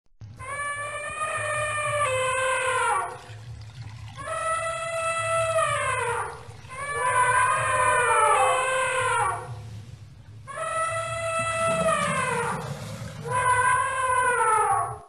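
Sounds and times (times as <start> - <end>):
young elephant calling: 4.2 - 9.8, 10.4 - 15.0.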